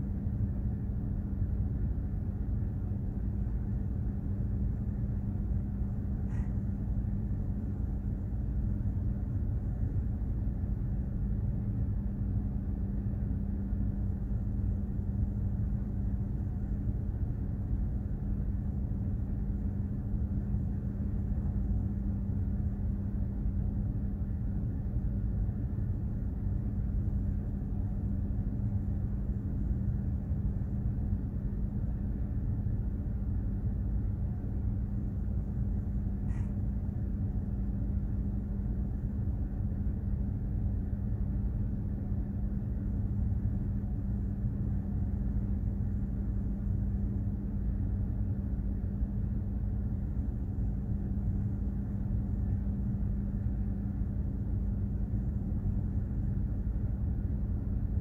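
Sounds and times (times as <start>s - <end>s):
constant hum: 0.0s - 58.0s
ship engine rumble: 0.2s - 58.0s.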